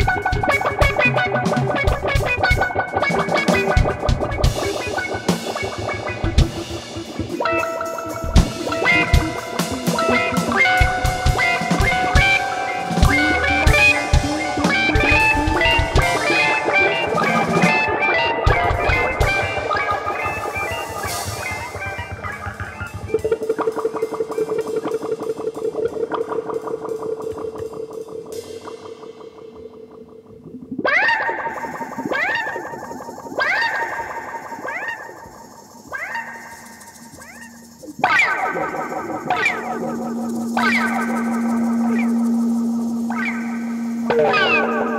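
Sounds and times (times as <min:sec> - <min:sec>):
psychedelic rock music: 0:00.0 - 0:44.9
pulsing held guitar note: 0:04.2 - 0:23.4, 0:38.6 - 0:44.9.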